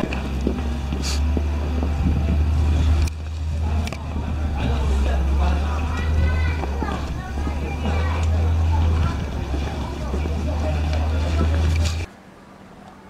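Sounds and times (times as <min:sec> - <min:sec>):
wind rumbling on microphone: 0:00.0 - 0:12.1.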